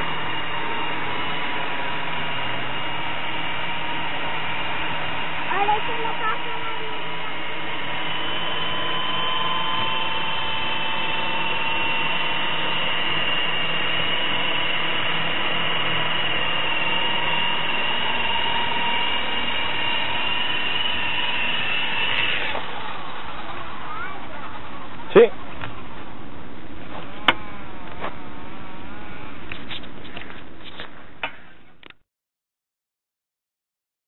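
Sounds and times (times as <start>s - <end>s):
rc helicopter motor whine: 0.0s - 31.8s.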